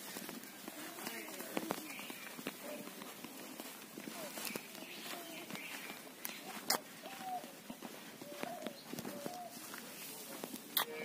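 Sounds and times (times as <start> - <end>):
bird cooing: 6.4 - 9.8.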